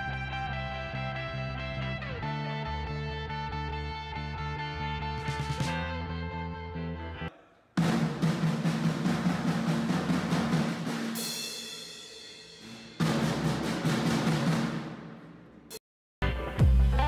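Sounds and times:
drum kit played with sticks: 5.2 - 5.8, 7.8 - 17.0.

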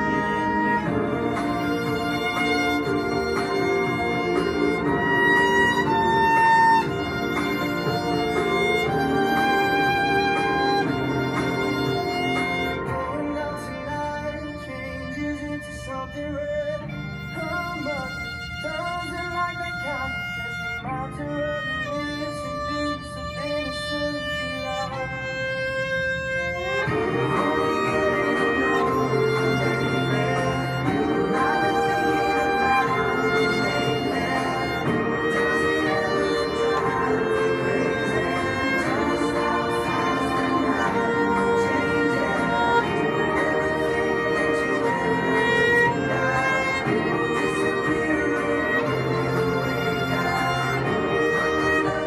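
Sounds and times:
backing track with steady beat: 0.0 - 52.0
violin playing pop melody: 0.0 - 52.0.

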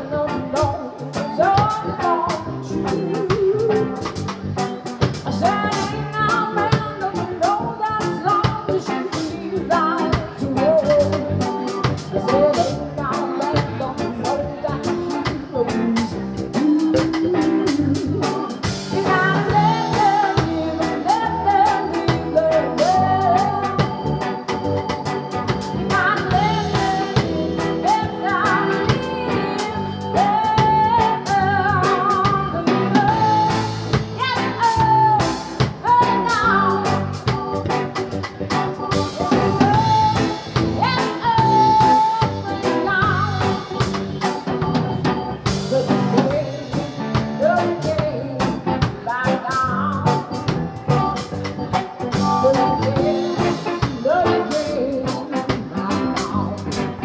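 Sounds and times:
woman singing: 0.0 - 37.8, 38.5 - 51.0, 51.8 - 57.0
bass: 0.0 - 57.0
drum kit: 0.0 - 57.0
electric guitar: 0.0 - 57.0.

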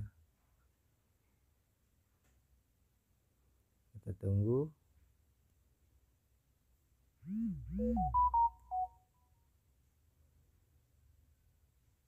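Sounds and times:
phone notification tone: 7.7 - 8.9.

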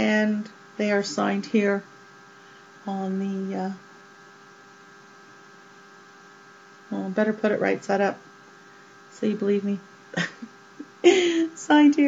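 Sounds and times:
woman speaking: 0.0 - 1.9, 2.8 - 3.8, 6.9 - 8.2, 9.1 - 12.0
electrical hum: 0.0 - 12.0.

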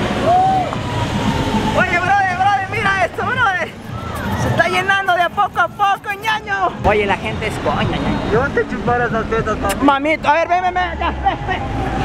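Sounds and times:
street traffic: 0.0 - 12.0.

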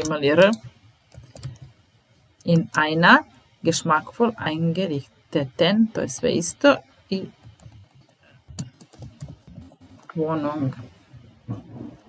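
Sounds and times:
computer keyboard clicks: 0.4 - 1.7, 7.6 - 9.7.

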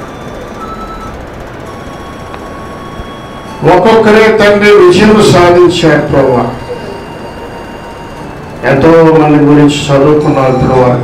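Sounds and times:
faint held tones: 0.0 - 11.0
sound system hiss and hum: 0.0 - 11.0.

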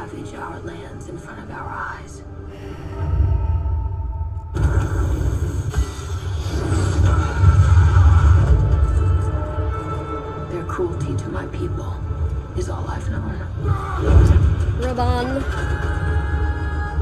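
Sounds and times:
deep rumbling score: 0.0 - 17.0.

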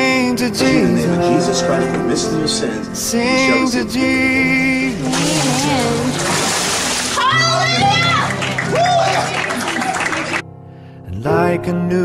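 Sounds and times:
children calling out and cheering: 7.2 - 10.4.

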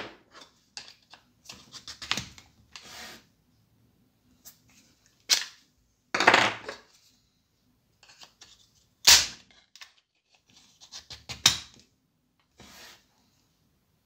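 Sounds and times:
plastic scrape: 12.5 - 13.1.

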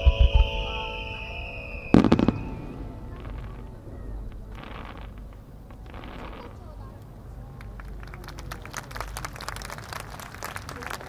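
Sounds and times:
high falling tone: 0.0 - 6.2
firework shells bursting: 0.0 - 6.7.

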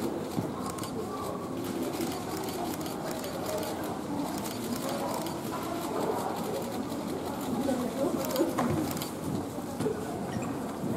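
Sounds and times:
indistinct chatter of voices: 0.0 - 10.9.

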